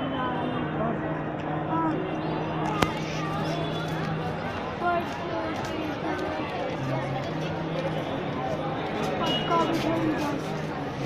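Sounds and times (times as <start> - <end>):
people talking: 0.0 - 11.0
street noise: 0.0 - 11.0.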